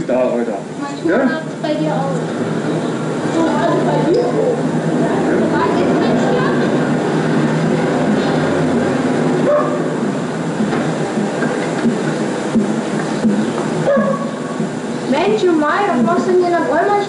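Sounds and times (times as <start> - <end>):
city street rumble: 0.0 - 17.0
faint indistinct voices: 0.0 - 17.0.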